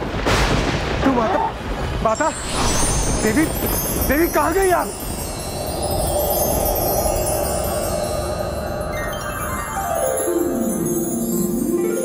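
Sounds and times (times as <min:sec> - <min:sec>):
shimmering tinkling chimes: 0:02.1 - 0:12.0.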